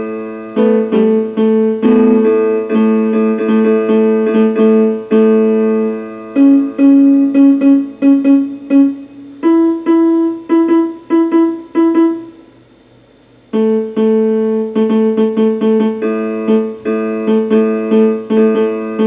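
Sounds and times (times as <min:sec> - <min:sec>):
keyboard short repeated notes: 0:00.0 - 0:12.4, 0:13.6 - 0:19.0
electronic keyboard playing chords: 0:00.0 - 0:12.5, 0:13.5 - 0:19.0.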